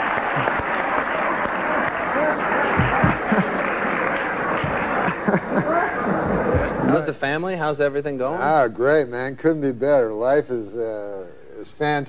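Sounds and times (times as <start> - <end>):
audience applauding: 0.0 - 7.1
audience laughing: 0.0 - 7.1.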